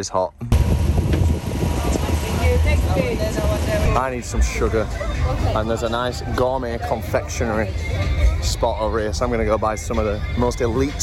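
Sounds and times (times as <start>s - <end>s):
low rumble: 0.4s - 7.1s
people chattering: 1.6s - 11.0s.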